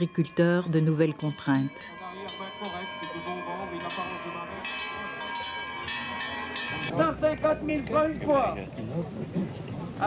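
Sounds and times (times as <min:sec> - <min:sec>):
cowbells ringing: 0:00.0 - 0:08.6
murmur of crowd voices: 0:03.7 - 0:10.0.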